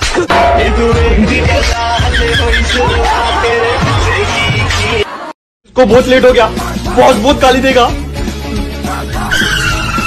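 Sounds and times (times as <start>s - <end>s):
background music: 0.0s - 10.0s
tyre screech sound effect: 9.2s - 10.0s.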